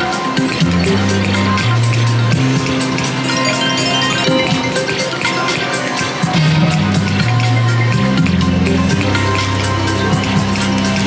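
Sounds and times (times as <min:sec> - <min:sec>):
electronic slot machine music: 0:00.0 - 0:11.0.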